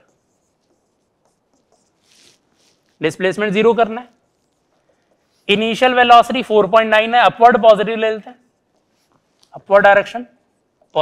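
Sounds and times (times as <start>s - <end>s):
marker scratching on whiteboard: 0.0s - 6.5s, 8.2s - 9.8s, 10.4s - 11.0s.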